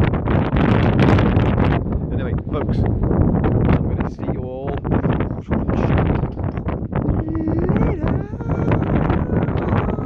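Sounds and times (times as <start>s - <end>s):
strong wind buffeting microphone: 0.0s - 10.0s
man's wordless vocal sounds: 5.0s - 10.0s.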